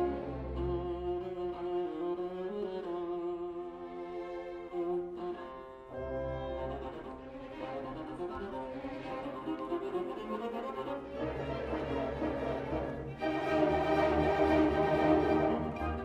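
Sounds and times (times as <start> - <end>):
orchestral strings music: 0.0 - 16.0.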